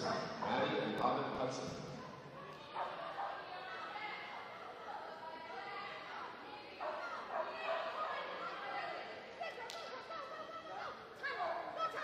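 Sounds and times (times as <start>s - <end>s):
voices in background: 0.0s - 12.0s.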